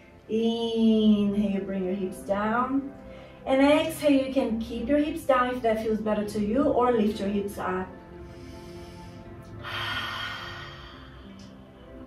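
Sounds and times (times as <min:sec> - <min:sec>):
woman's breathy exhale: 0:08.2 - 0:11.6.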